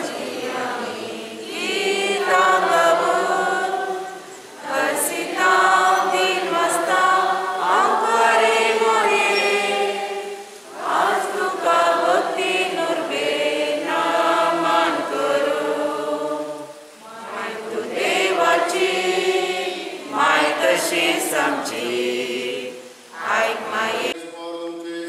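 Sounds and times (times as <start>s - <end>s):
congregation singing a hymn: 0.0s - 25.0s.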